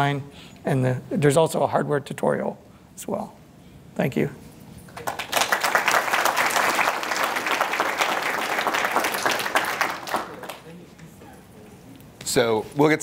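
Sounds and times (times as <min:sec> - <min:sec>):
audience applauding: 0:05.0 - 0:10.8.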